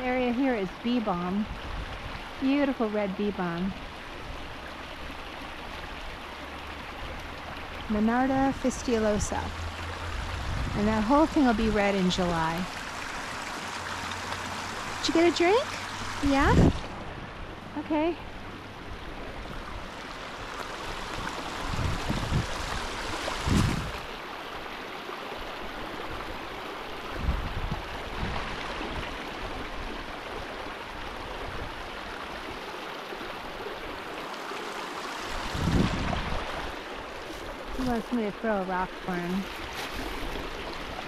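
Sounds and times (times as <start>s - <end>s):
stream running over rocks: 0.0s - 41.0s.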